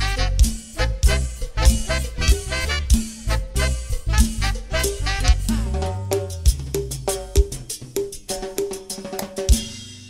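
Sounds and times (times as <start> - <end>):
latin dance band music: 0.0 - 10.0.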